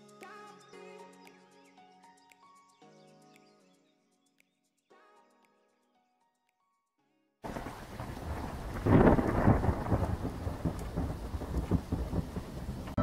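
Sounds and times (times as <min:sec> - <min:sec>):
rain falling: 0:07.4 - 0:13.0
thunder rumble: 0:07.4 - 0:13.0.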